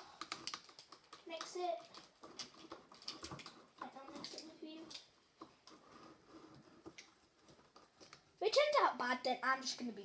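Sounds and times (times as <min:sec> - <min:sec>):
clicks and taps on plastic cup: 0:00.2 - 0:05.6.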